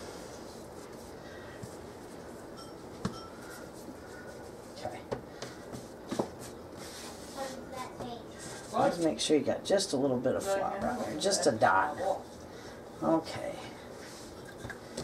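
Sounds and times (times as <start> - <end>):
low room hiss: 0.0 - 15.0.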